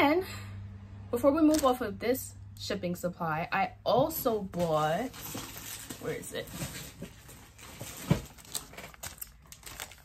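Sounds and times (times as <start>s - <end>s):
items being rummaged through: 3.9s - 10.0s.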